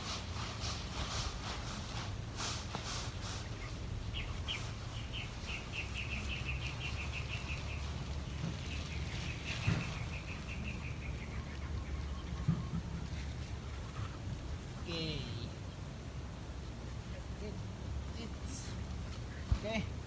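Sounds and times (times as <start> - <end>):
bird calling: 2.7 - 17.6.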